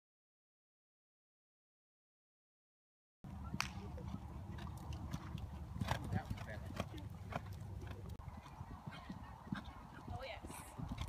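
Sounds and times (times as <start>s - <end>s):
hooves thudding on sand: 3.4s - 11.0s.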